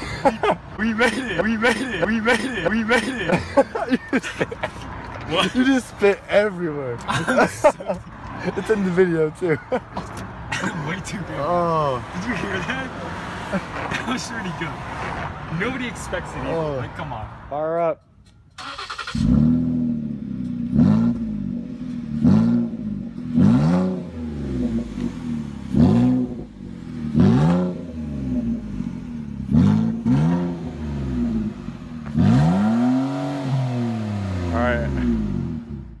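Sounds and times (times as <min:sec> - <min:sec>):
car engine revving: 0:18.6 - 0:36.0.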